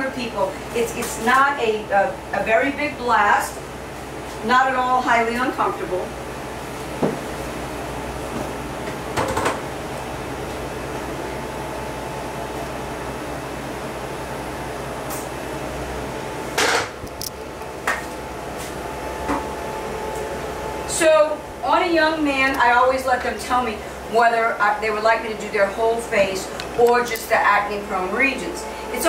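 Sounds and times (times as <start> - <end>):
low equipment hum: 0.0 - 29.0.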